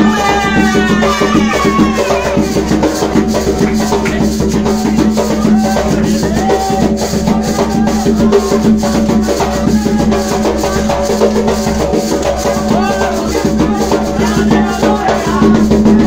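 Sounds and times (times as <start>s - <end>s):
group singing: 0.0s - 16.0s
hand drums: 0.0s - 16.0s.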